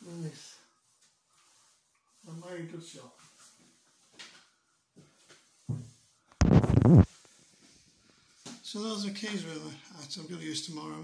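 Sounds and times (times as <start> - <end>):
phone being handled: 6.4 - 7.1.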